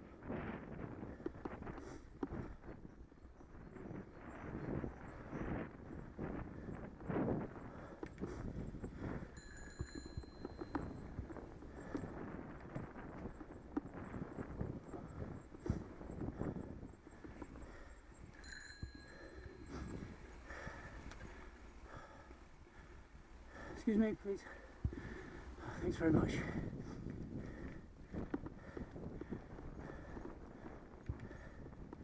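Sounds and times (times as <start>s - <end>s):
rumble of tyres: 0.0s - 32.0s
wind: 0.0s - 32.0s
bicycle rattling and knocking: 1.0s - 32.0s
bicycle bell ringing: 9.3s - 11.2s, 18.3s - 19.9s.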